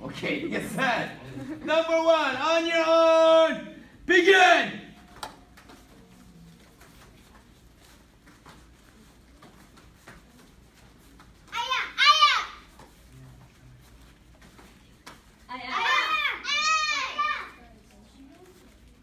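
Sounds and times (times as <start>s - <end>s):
children shouting together: 11.6s - 12.7s, 15.7s - 17.6s.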